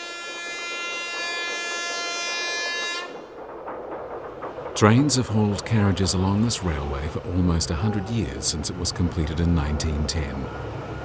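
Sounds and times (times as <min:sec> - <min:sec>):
train horn blast: 0:00.0 - 0:03.2.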